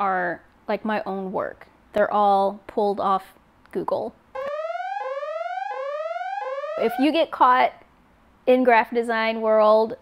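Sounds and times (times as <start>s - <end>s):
buzzy synthetic alarm tone: 4.4s - 7.2s.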